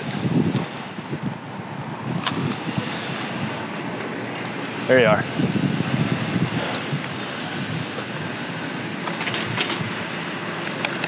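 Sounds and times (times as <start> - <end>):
wind rumble on microphone: 0.0 - 4.0, 4.8 - 8.6, 9.2 - 11.0.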